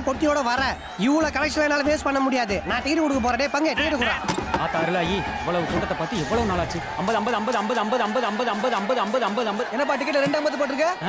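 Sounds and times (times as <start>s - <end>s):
man talking rapidly: 0.0s - 11.0s.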